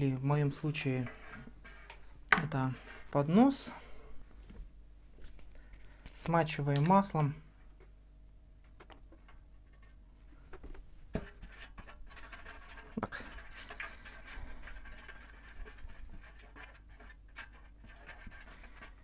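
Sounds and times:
brush rubbing metal baking tray: 0:00.6 - 0:01.9, 0:11.3 - 0:19.0.

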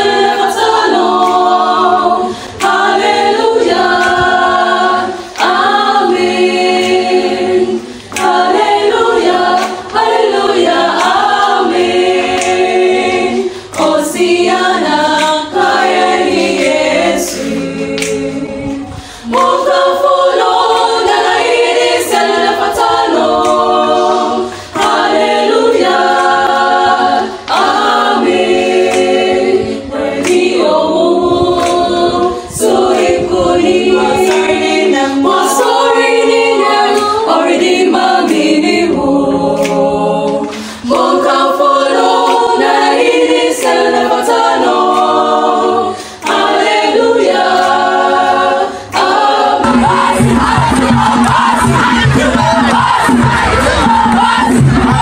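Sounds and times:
choir singing unaccompanied: 0:00.0 - 0:55.0.

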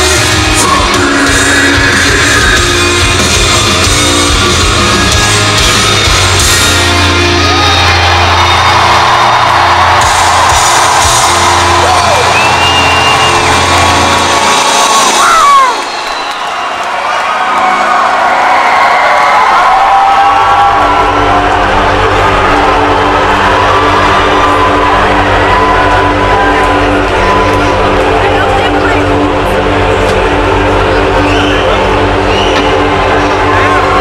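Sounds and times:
heavy rock band playing loud: 0:00.0 - 0:15.8
crowd cheering and whistling: 0:00.0 - 0:34.0.

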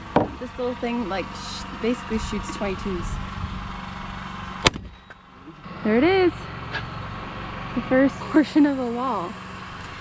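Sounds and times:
steady low hum: 0:00.0 - 0:10.0
nail gun firing crack: 0:04.6 - 0:04.9.

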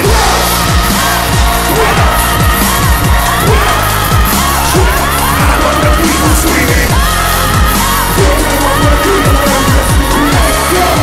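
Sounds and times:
hip-hop backing track: 0:00.0 - 0:11.0.

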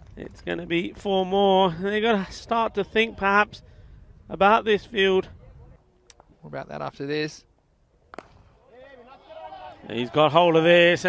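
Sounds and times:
cricket bat hitting ball: 0:08.1 - 0:08.4.

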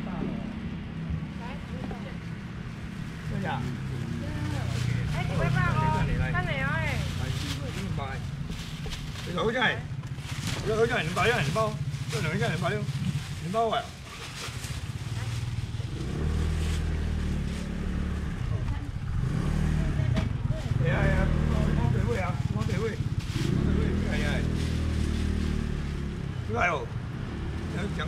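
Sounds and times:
vehicle engine running low: 0:00.0 - 0:28.0.

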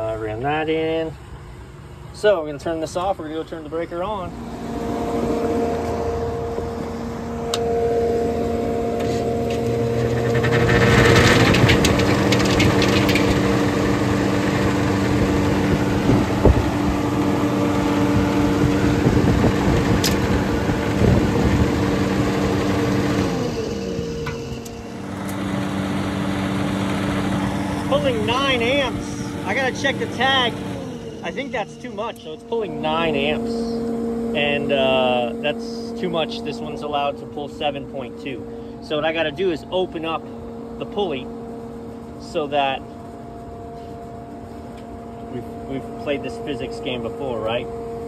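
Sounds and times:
exhaust fan motor humming: 0:00.0 - 0:48.0.

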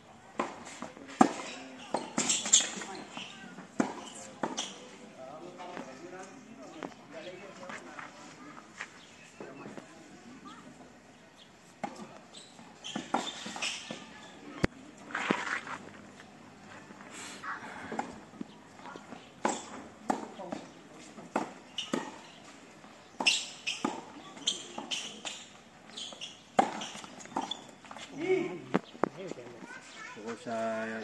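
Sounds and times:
footsteps on court: 0:05.6 - 0:09.9, 0:14.7 - 0:17.2.

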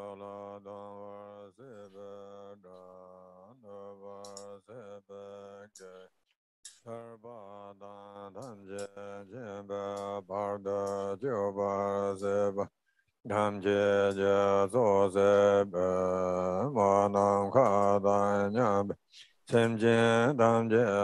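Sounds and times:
man chanting a prayer: 0:00.0 - 0:06.1, 0:06.8 - 0:12.7, 0:13.3 - 0:21.0.

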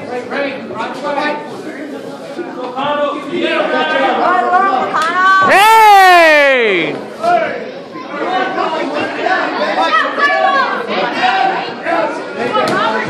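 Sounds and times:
crowd chatter in a hall: 0:00.0 - 0:13.0
person yelling: 0:05.4 - 0:06.9.

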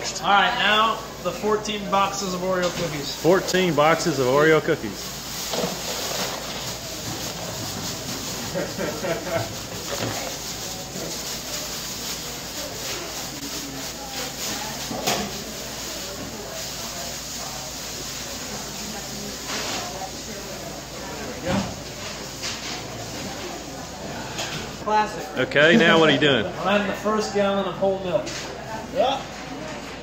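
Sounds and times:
plastic bag rustling: 0:00.4 - 0:24.1.

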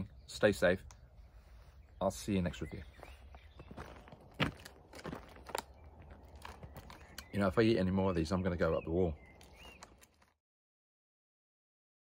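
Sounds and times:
plastic packet crinkling: 0:09.3 - 0:10.4.

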